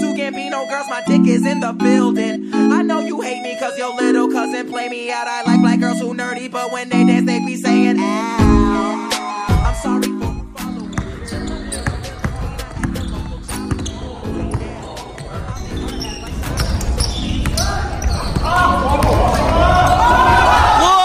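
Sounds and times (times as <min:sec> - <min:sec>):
basketball bouncing on gym floor: 0:10.8 - 0:20.8
voices shouting and whooping: 0:17.6 - 0:21.0.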